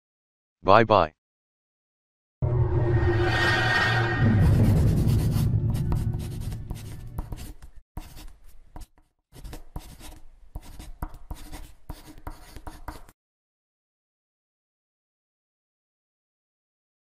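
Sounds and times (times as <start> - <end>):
marker scratching on surface: 4.3 - 13.2.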